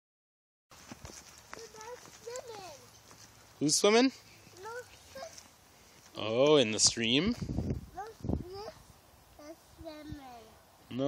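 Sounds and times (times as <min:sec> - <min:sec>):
footsteps on pavement: 0:00.7 - 0:06.6, 0:07.3 - 0:08.5.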